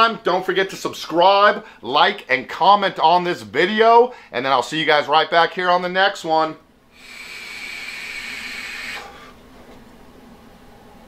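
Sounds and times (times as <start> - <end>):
faint exhale: 6.9 - 9.4
hiss of air through vape tank: 6.9 - 9.4.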